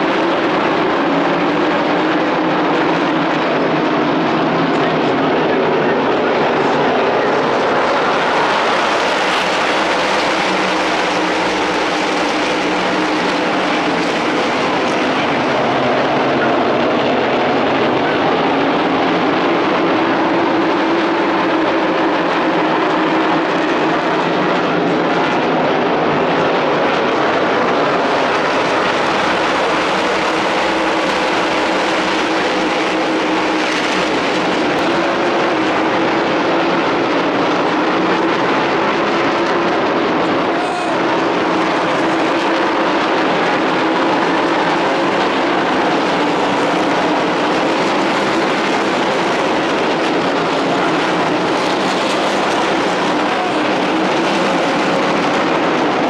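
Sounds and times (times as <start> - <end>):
race car engines running: 0.0 - 56.0.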